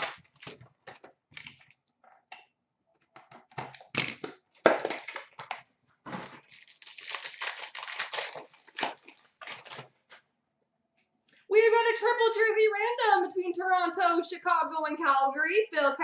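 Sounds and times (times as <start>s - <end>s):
wrappers and cardboard tearing: 0.0s - 0.6s, 3.9s - 10.2s
packaging rustling: 3.7s - 10.2s.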